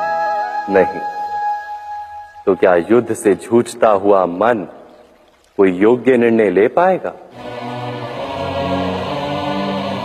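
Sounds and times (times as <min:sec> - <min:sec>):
voices chanting devotional music: 0:00.0 - 0:04.6, 0:05.6 - 0:10.0.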